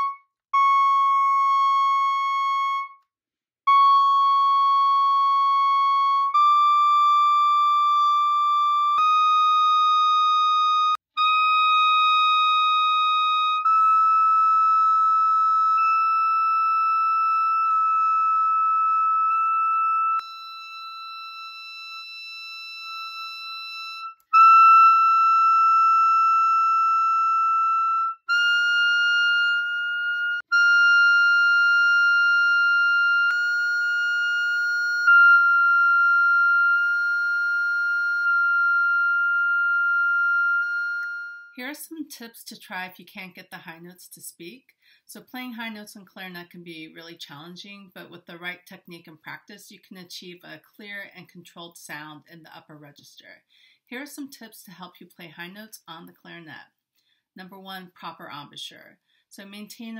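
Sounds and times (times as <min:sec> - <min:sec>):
clarinet holding high notes: 0:00.0 - 0:03.1, 0:03.7 - 0:41.7.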